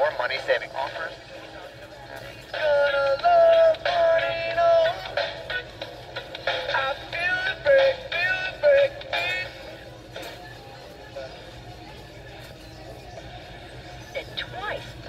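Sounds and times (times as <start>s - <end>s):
music with singing on small radio: 0.0s - 15.0s.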